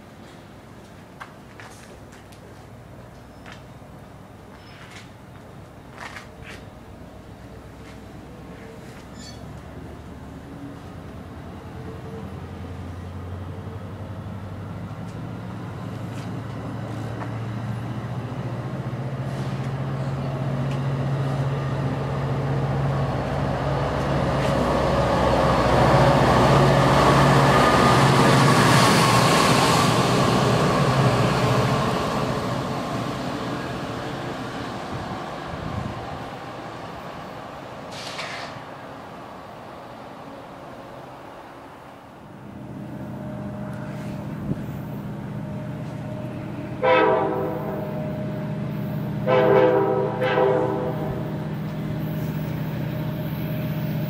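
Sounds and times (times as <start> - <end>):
passenger train rolling past: 6.8 - 54.0.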